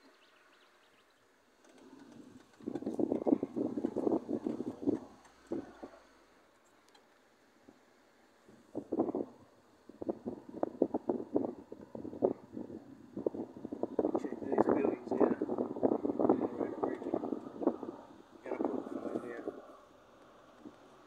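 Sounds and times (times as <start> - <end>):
wind buffeting microphone: 1.8 - 6.0, 8.5 - 21.0.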